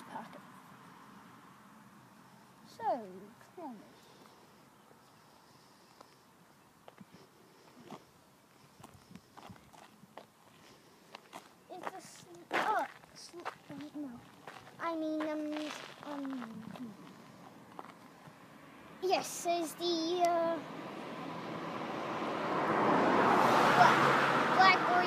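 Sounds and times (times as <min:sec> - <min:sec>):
footsteps on gritty pavement: 0:08.7 - 0:18.4.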